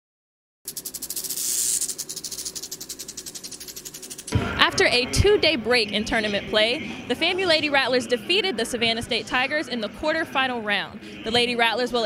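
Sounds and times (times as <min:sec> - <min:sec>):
rattlesnake rattle buzzing: 0:00.7 - 0:04.4.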